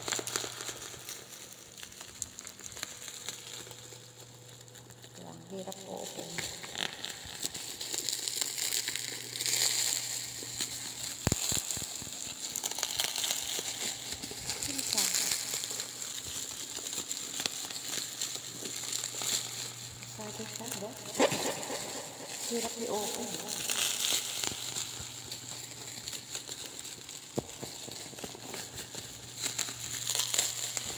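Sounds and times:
plastic packaging crinkling: 0.0 - 30.9.

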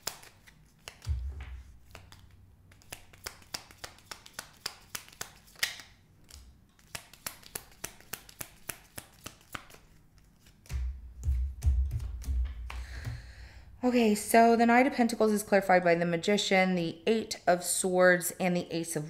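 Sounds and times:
cards being shuffled: 0.0 - 13.0.

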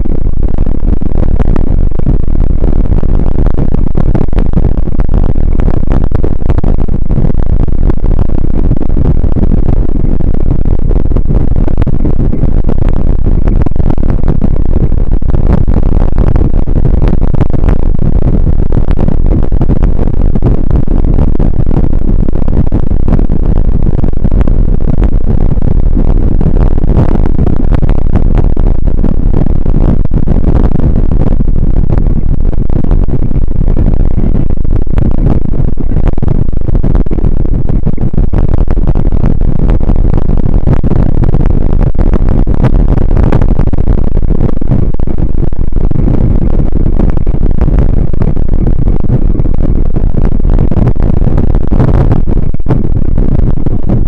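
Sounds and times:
wind rumble on microphone: 0.0 - 54.0.

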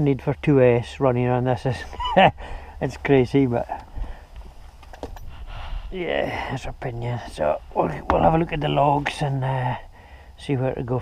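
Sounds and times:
steady low rumble: 2.6 - 10.5.

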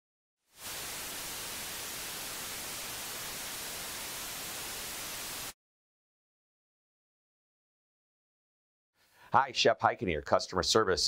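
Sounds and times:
television static hiss: 0.6 - 5.5.

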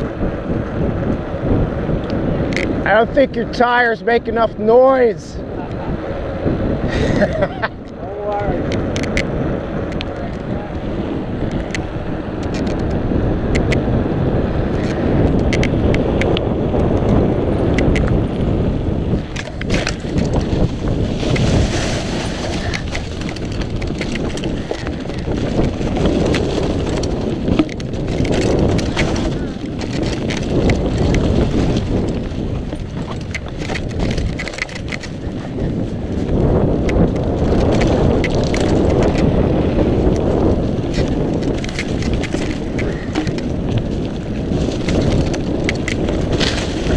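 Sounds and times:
bike tyres rolling: 0.0 - 4.6, 5.4 - 46.9
bike rattling over bumps: 0.0 - 46.9
wind rushing over microphone: 0.0 - 46.9
tyres through dry leaves: 19.4 - 36.4, 37.2 - 46.9.

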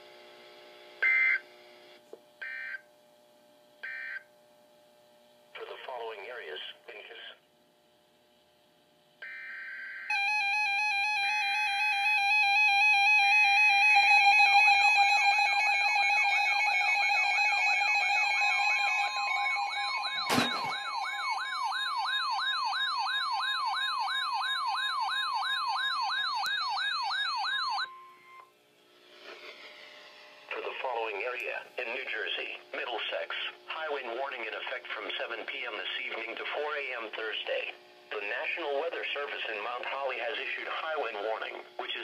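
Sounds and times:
warbling alarm tones: 9.2 - 28.5
steady attention tone: 10.1 - 23.7.

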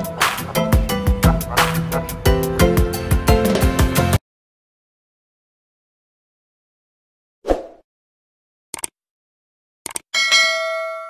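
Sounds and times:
notification bell ding: 10.2 - 11.0.

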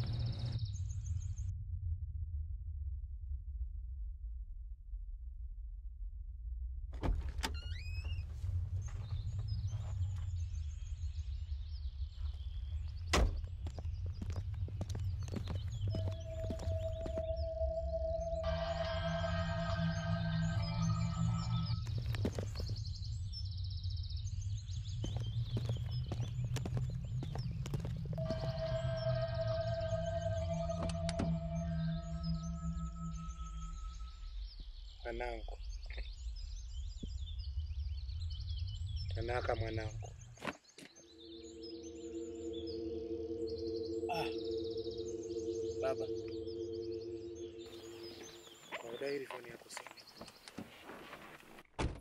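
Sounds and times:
birds chirping: 0.0 - 1.5, 7.6 - 51.6
low background rumble: 0.0 - 40.4
low music drone: 14.8 - 35.4, 41.0 - 49.4
faint high chirps: 41.0 - 50.3.

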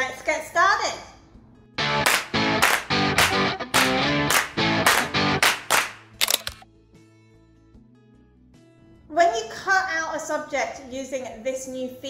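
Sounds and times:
background music: 0.0 - 12.0
camera shutter click: 6.2 - 6.6.

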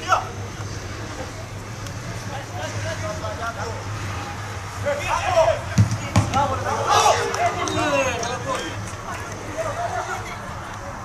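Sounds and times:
players shouting: 0.0 - 11.0.

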